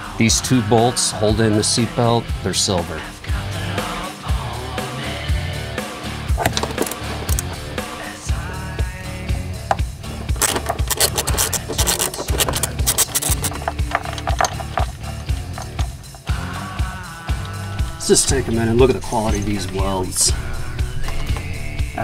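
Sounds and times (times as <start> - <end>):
rock music with steady beat: 0.0 - 22.0
ratchet wrench clicking: 6.4 - 7.6, 9.7 - 16.6.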